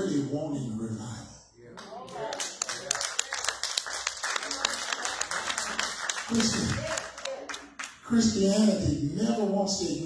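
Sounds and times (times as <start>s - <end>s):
crowd noise: 1.6s - 8.8s
hands clapping: 1.7s - 8.0s.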